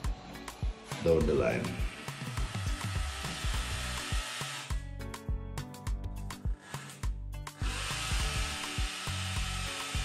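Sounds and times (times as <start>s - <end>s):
background music with beat: 0.0s - 10.0s
cordless drill running: 1.8s - 4.8s, 6.6s - 10.0s.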